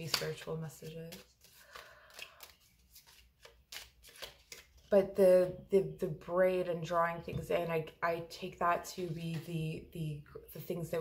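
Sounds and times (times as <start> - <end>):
cards being shuffled by hand: 0.0 - 4.9.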